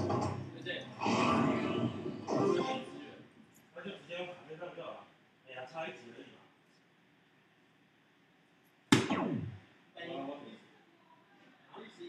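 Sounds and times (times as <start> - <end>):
dart hitting dartboard: 8.9 - 9.6
electronic tones sliding down: 9.0 - 9.6.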